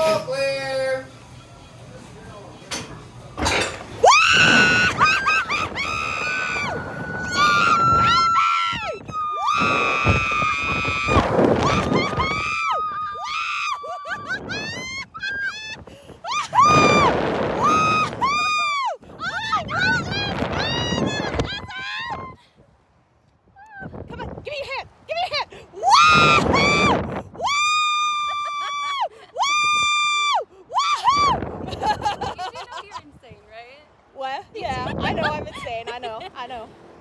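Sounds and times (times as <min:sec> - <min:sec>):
rushing wind: 0:03.7 - 0:37.0
people screaming and laughing: 0:04.0 - 0:22.4, 0:27.4 - 0:29.9.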